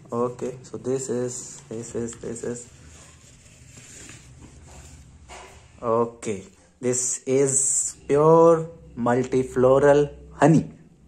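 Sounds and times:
cardboard rustling and scraping: 0:00.1 - 0:05.8.

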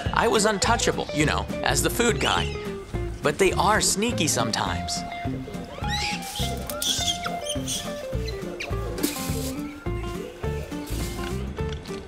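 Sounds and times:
background music with steady beat: 0:00.0 - 0:12.0
brief high squeaks: 0:05.8 - 0:08.0.

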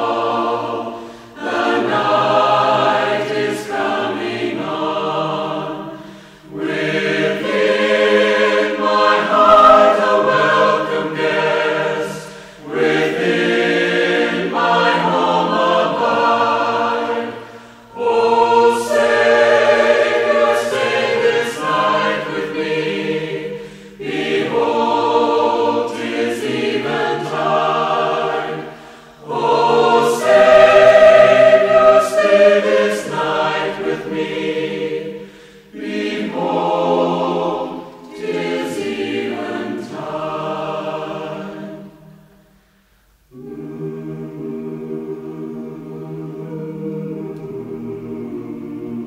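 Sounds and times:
choir singing a hymn: 0:00.0 - 0:49.0.

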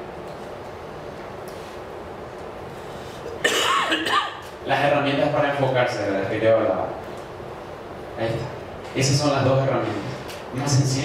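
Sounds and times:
room hiss: 0:00.0 - 0:11.0
man clearing throat: 0:03.4 - 0:04.5.

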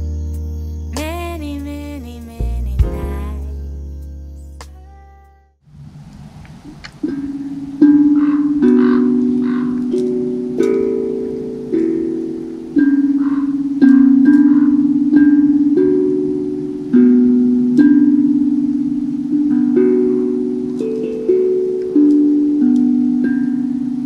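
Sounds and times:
handpan notes ringing: 0:07.0 - 0:24.0.

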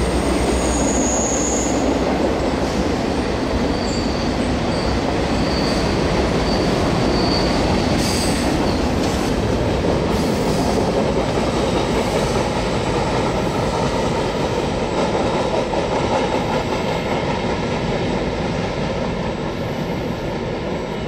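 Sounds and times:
train wheels rumbling on rail: 0:00.0 - 0:21.0
high wheel squeals: 0:00.6 - 0:01.9, 0:03.6 - 0:08.9.

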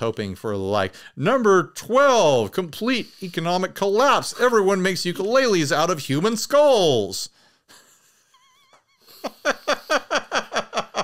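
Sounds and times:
man laughing: 0:07.7 - 0:11.0.

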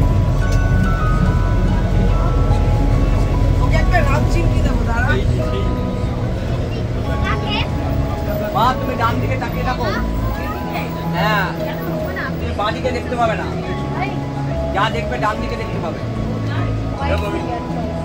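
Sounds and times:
bus engine humming: 0:00.0 - 0:18.0
music with held notes: 0:00.0 - 0:18.0
voices: 0:00.9 - 0:18.0.

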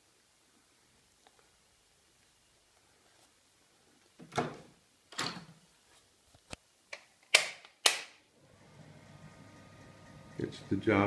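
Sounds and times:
low steady hum: 0:08.4 - 0:11.0.

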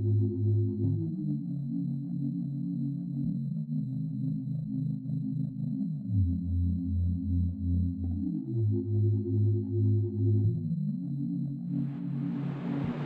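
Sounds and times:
sustained synthesizer chords: 0:00.0 - 0:13.0
pulsing low bass: 0:06.0 - 0:13.0.

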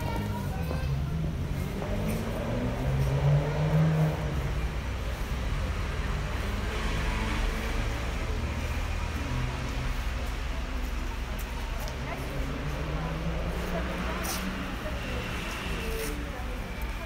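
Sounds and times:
street traffic: 0:00.0 - 0:17.0
vehicle engine rumbling: 0:00.0 - 0:17.0.

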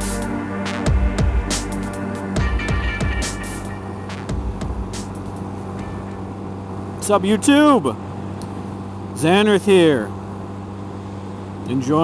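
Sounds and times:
electronic music with sharp beats: 0:00.0 - 0:06.2
motorcycle engine running steadily: 0:00.0 - 0:12.0.

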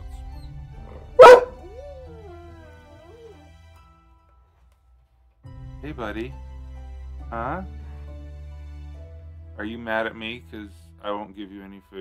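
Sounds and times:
quiet background music: 0:00.0 - 0:12.0
dog whining: 0:00.1 - 0:03.5.

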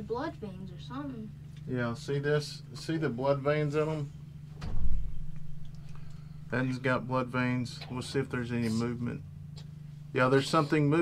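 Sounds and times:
steady low hum: 0:00.0 - 0:11.0
dull low thump: 0:04.6 - 0:05.6.

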